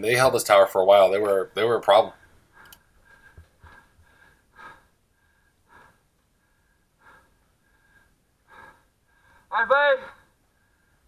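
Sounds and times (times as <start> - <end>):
quick breathing: 2.1 - 11.0.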